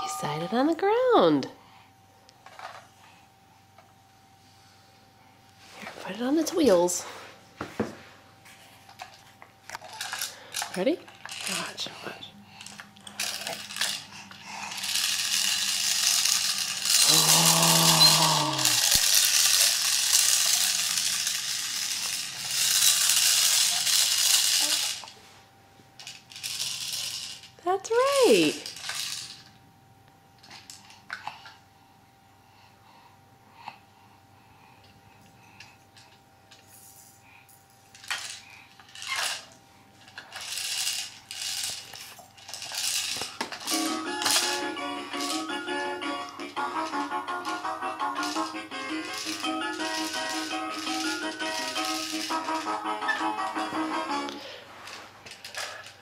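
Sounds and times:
plastic baby toy rattling: 9.8 - 11.8, 12.6 - 25.1, 26.0 - 27.5, 28.5 - 29.5, 37.9 - 45.6, 46.8 - 53.2.

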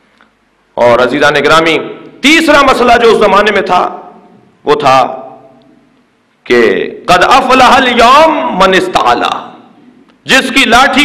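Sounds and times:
man speaking over loudspeaker: 0.8 - 5.5, 6.5 - 11.0.

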